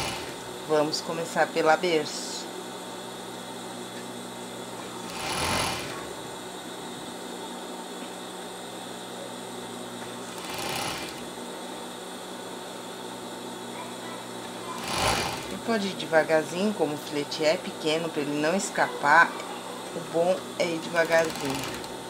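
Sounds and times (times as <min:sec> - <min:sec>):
sewing machine stitching: 0:00.0 - 0:00.4, 0:05.0 - 0:06.0, 0:10.3 - 0:11.2, 0:14.8 - 0:15.6, 0:21.0 - 0:21.9.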